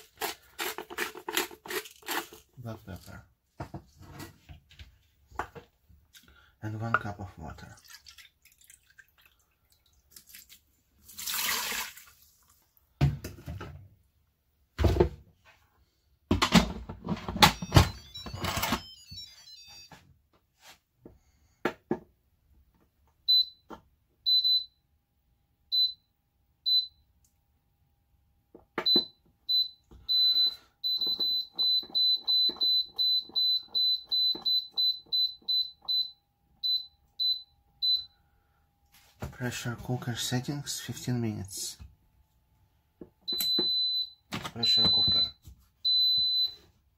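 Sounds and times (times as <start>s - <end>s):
control panel beeps: 17.4s - 20.0s, 43.3s - 46.5s.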